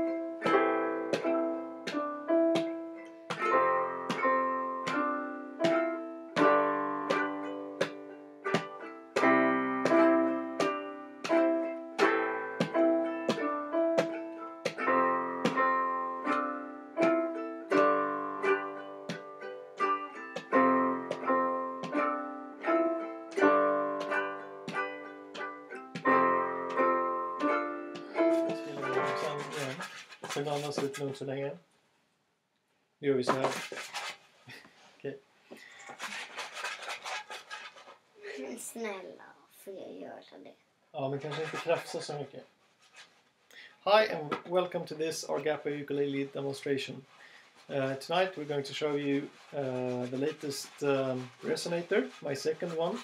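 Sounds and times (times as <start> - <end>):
keyboard: 0.0 - 30.6
hand drum: 0.0 - 30.8
ukulele strummed: 0.0 - 31.1, 47.8 - 53.0.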